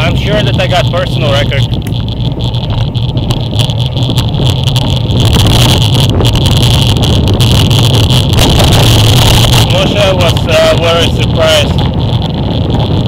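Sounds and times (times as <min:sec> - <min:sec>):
wind rushing over microphone: 0:00.0 - 0:13.0.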